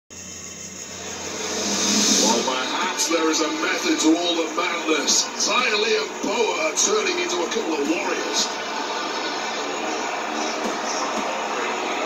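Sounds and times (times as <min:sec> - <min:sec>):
television hiss: 0:00.1 - 0:12.0.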